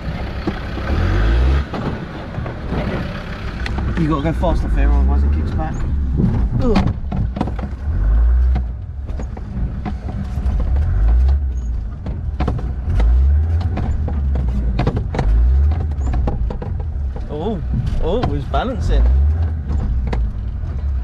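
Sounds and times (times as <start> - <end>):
knocks and rattles from vehicle body: 0.0 - 1.0, 1.6 - 21.0
off-road vehicle engine running: 0.0 - 21.0.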